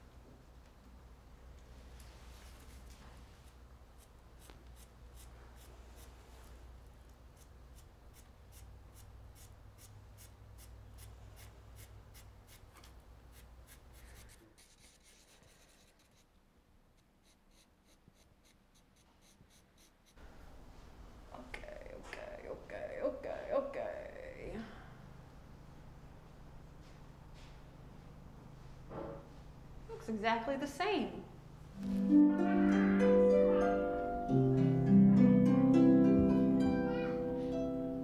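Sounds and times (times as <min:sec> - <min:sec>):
pencil scratching on panel: 0:03.4 - 0:06.2, 0:07.4 - 0:16.3, 0:17.0 - 0:20.2.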